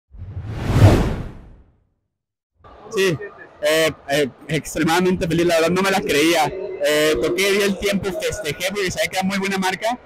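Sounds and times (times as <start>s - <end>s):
whoosh: 0.1s - 1.6s.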